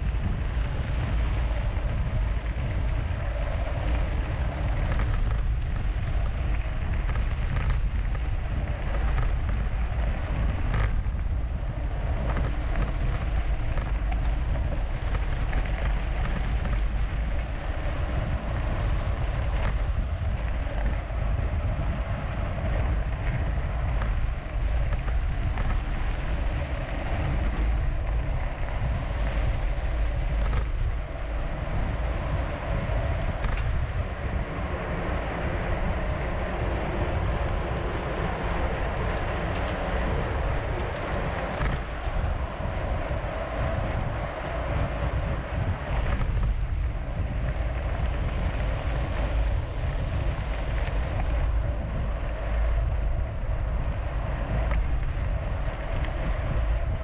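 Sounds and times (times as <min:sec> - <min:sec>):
wind buffeting microphone: 0:00.0 - 0:57.0
bike clicks and rattles: 0:00.1 - 0:57.0
tyres rolling on gravel: 0:00.2 - 0:57.0.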